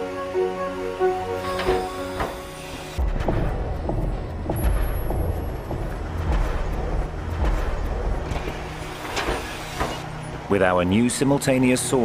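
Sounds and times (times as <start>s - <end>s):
truck engine low rumble: 3.0s - 9.2s.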